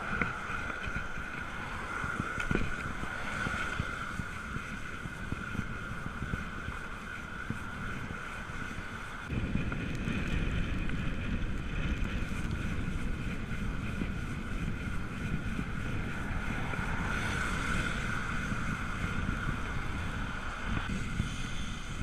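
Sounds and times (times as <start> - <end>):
tyres hissing on wet road: 0.0 - 4.5, 16.2 - 22.0
bicycle bumps: 0.0 - 22.0
low rumble: 0.0 - 22.0
steady high whine: 0.0 - 22.0
wind buffeting microphone: 0.0 - 22.0.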